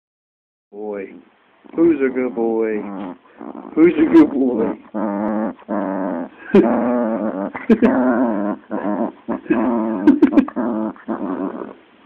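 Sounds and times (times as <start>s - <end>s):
small dog growling: 1.8s - 11.9s.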